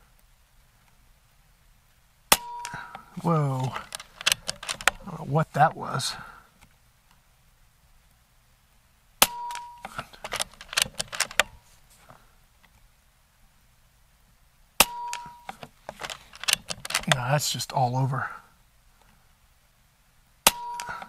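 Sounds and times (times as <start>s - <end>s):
air rifle lever clicks: 2.3s - 5.0s, 9.2s - 11.6s, 14.8s - 17.2s, 20.5s - 21.0s.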